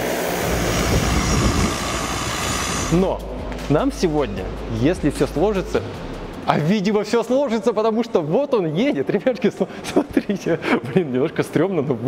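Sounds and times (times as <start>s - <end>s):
multicopter propellers and motors: 0.0s - 3.0s
deep rumble: 0.3s - 6.4s.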